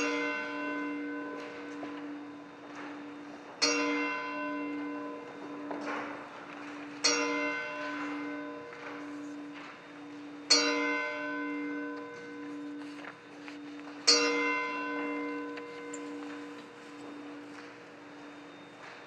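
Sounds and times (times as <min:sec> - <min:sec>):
church bell tolling: 0:00.0 - 0:19.0.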